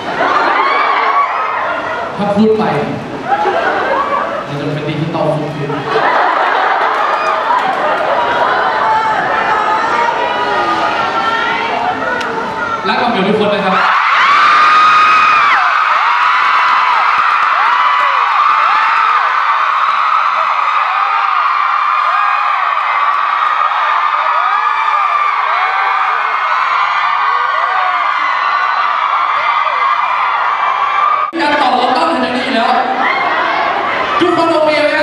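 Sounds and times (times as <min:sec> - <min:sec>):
crowd screaming and cheering: 0:00.0 - 0:04.6, 0:05.4 - 0:35.0.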